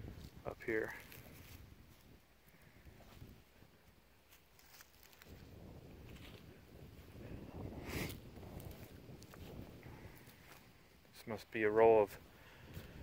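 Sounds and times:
footsteps through grass: 0.1 - 10.8, 12.7 - 13.0
light wind on microphone: 4.6 - 10.9, 12.1 - 13.0.

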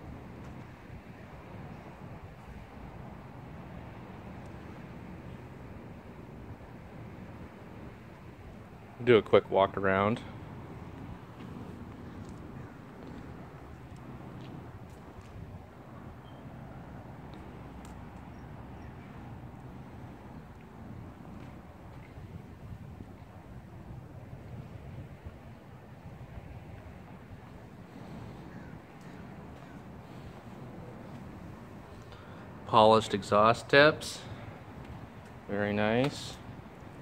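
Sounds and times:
low outdoor rumble: 0.0 - 37.0
wind on microphone: 9.9 - 32.6.

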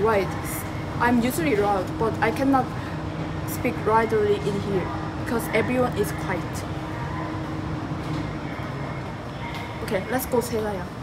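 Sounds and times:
train carriage rumbling: 0.0 - 11.0.

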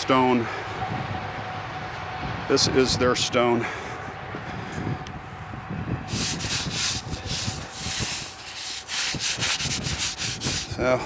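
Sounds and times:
gloved hand brushing snow off stone: 6.1 - 10.8.

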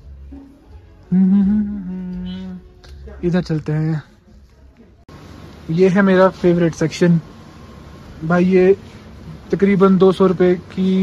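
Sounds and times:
man humming: 1.1 - 2.8.

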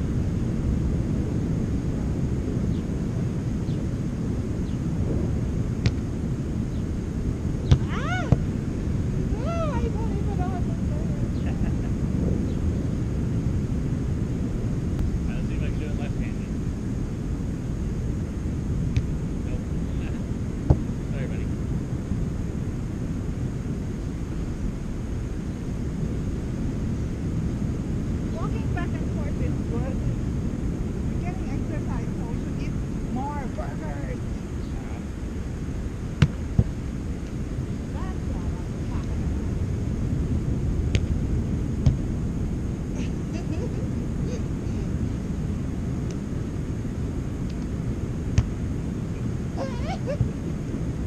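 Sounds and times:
wind rumbling on microphone: 0.0 - 51.0
faint distant voices: 15.3 - 16.5.

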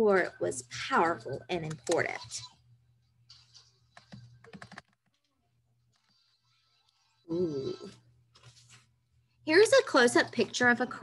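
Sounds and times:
computer clicking: 1.6 - 2.1, 3.3 - 5.2.

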